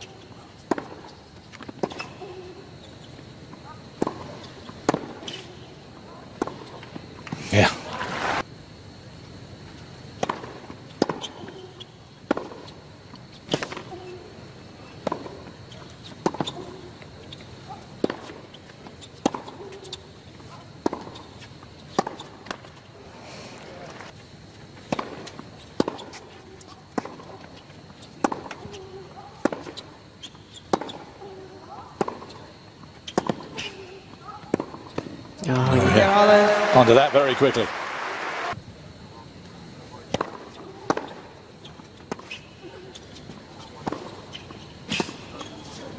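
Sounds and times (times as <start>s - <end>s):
tennis ball struck by rackets: 0.7s - 2.4s, 3.5s - 5.5s, 10.2s - 11.4s, 12.3s - 12.7s, 16.2s - 16.8s, 18.0s - 18.4s, 19.2s - 20.0s, 21.9s - 22.6s, 24.8s - 27.4s, 28.1s - 29.8s, 30.7s - 31.1s, 32.0s - 32.4s, 33.1s - 35.2s, 40.1s - 41.2s, 43.7s - 45.6s
player grunting: 7.4s - 8.1s, 35.4s - 36.8s.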